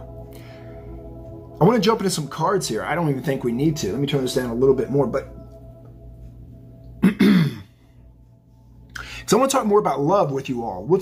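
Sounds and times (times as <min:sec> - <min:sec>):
man clearing his throat: 0:07.0 - 0:07.7.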